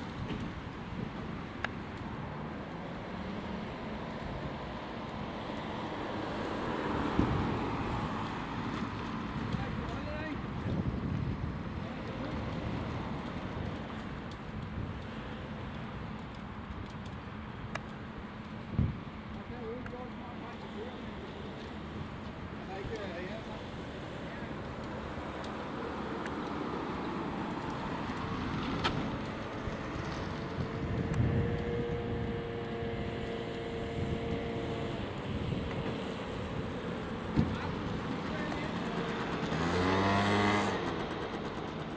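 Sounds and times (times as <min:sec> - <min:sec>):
faint outdoor traffic: 0:00.0 - 0:41.9
wind buffeting microphone: 0:06.6 - 0:16.0, 0:18.6 - 0:19.2, 0:21.8 - 0:40.4.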